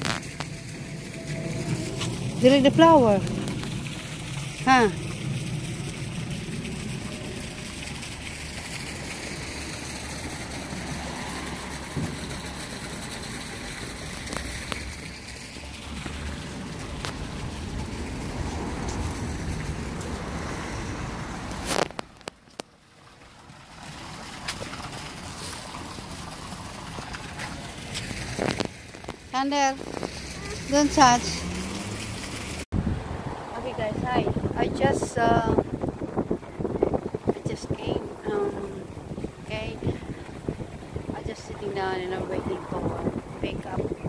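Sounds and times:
wind buffeting microphone: 0.0 - 21.7, 26.2 - 44.0.

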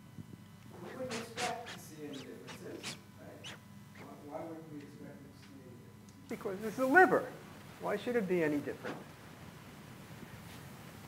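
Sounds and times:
man speaking quietly: 0.8 - 5.8.

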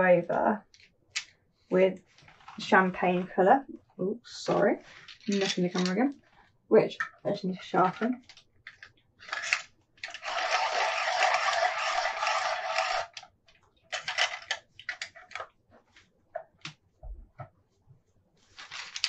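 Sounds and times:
pencil sharpener grinding: 9.2 - 13.3.

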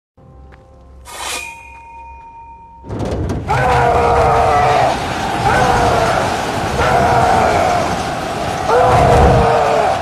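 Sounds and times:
metallic clang ringing: 1.2 - 3.5.

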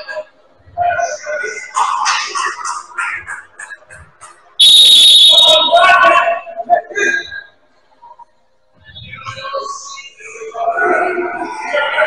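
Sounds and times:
referee's whistle blast: 4.6 - 6.0
faint court noise: 4.6 - 6.2.

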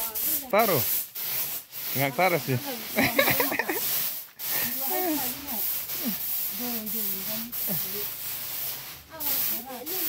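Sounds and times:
rice shaken in bamboo trays: 0.0 - 10.0.

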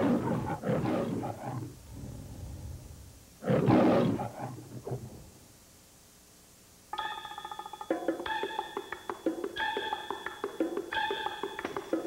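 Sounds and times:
lion roaring: 0.0 - 5.3.

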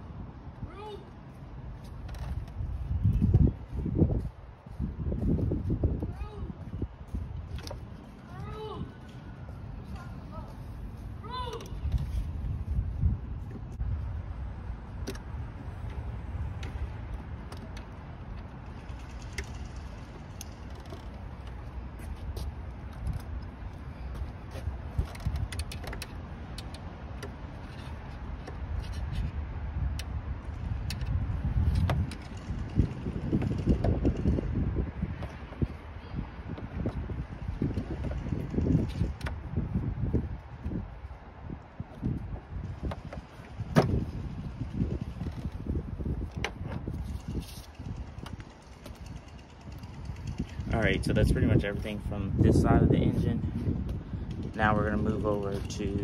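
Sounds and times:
tools clicking and knocking: 25.0 - 27.4
low rumbling rustle: 27.4 - 56.0.

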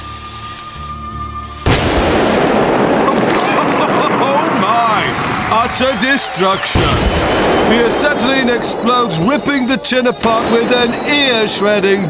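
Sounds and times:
metal tin explosion bang: 1.7 - 5.5.

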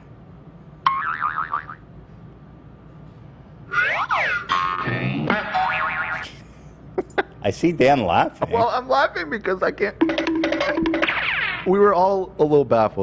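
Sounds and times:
pitched cartoon noises: 3.7 - 6.2
wobbling warbling effect: 3.7 - 6.3, 10.2 - 11.7.

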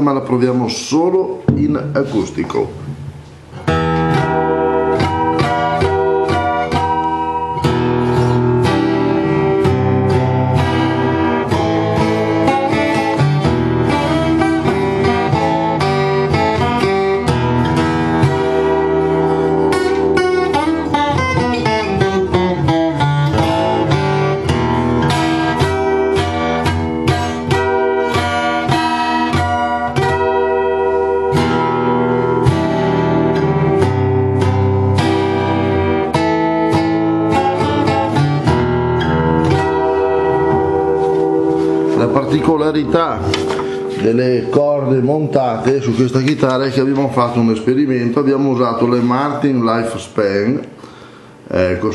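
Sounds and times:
twelve-string acoustic guitar: 0.0 - 51.9.

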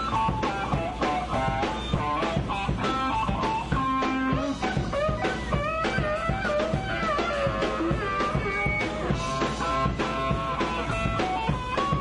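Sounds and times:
drum kit steady beat: 0.0 - 12.0
electric guitar lead: 0.0 - 12.0.

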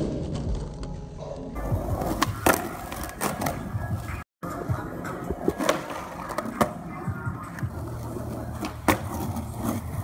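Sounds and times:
skateboard wheels rolling on asphalt: 0.0 - 10.0
music: 0.4 - 10.0
skateboard clacking: 1.6 - 10.0.

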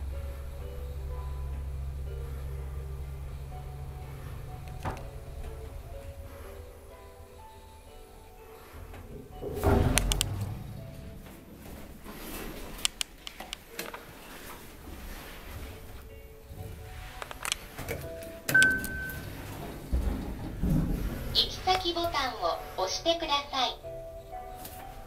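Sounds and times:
elevator rumble: 0.0 - 25.0
faint background music: 0.0 - 25.0
sharp clicks: 9.9 - 10.4, 12.8 - 14.0
high electronic beep: 18.5 - 19.3.

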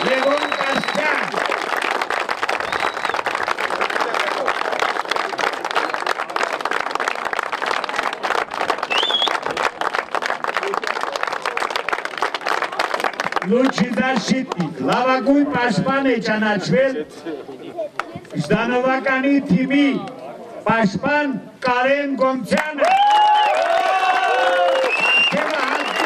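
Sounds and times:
crowd applauding: 0.0 - 15.0, 22.6 - 26.0.

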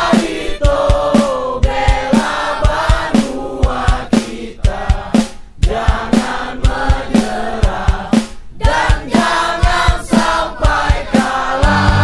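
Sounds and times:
steady drum beat: 0.0 - 12.0
voices singing: 0.0 - 12.0.

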